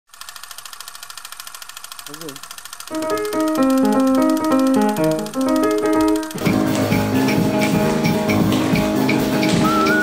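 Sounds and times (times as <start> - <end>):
film projector running: 0.1 - 10.0.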